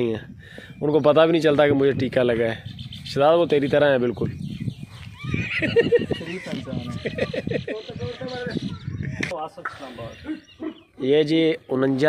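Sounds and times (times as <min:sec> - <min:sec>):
men laughing: 0:05.1 - 0:08.7.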